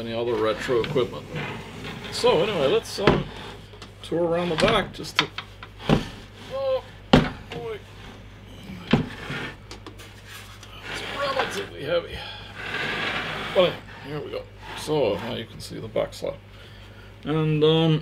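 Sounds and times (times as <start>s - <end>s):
case scraping across tabletop: 0.3s - 3.7s, 8.8s - 9.6s, 10.2s - 11.8s, 12.5s - 15.5s.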